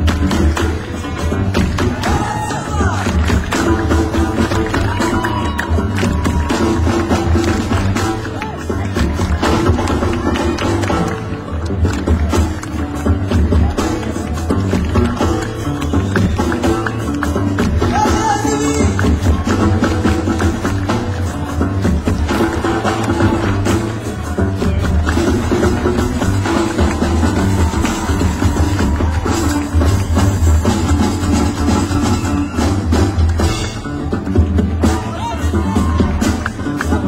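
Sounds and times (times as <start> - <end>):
band playing loudly: 0.0 - 37.0
deep bass line: 0.0 - 37.0
drums: 0.0 - 37.0.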